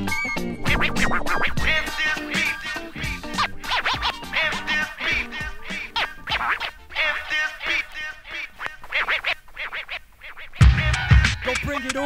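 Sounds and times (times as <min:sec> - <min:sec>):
faint hip-hop beat: 0:00.0 - 0:12.0
turntable scratching: 0:00.0 - 0:12.0.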